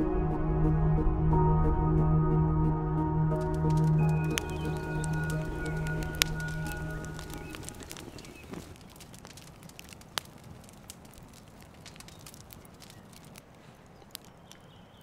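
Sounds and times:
background music: 0:00.0 - 0:07.9
wood fire crackling and popping: 0:03.3 - 0:15.0.

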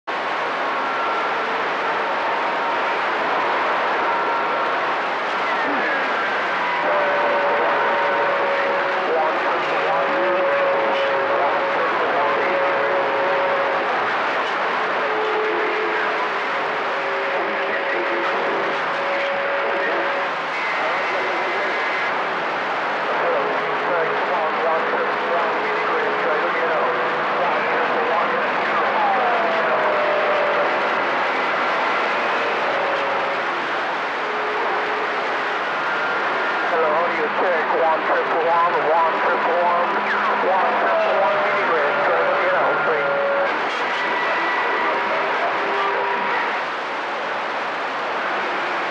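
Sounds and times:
radio static and hiss: 0:00.1 - 0:48.9.

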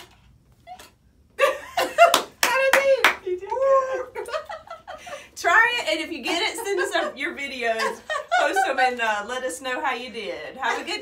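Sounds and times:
women laughing and exclaiming: 0:01.4 - 0:09.6.

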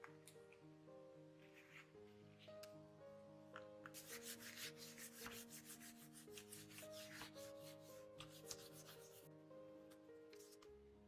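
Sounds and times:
quiet background music: 0:00.0 - 0:11.0
hands rubbing paper: 0:04.0 - 0:09.2.

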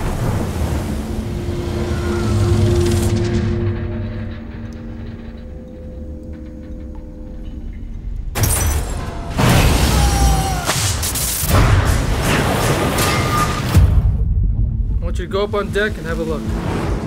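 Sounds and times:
deep rumble: 0:00.0 - 0:08.4
low droning tones: 0:00.3 - 0:08.4
faint ticks and creaks: 0:04.4 - 0:08.3.

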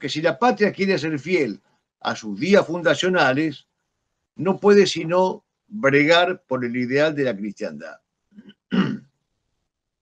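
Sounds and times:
man clearing his throat: 0:08.7 - 0:09.0.

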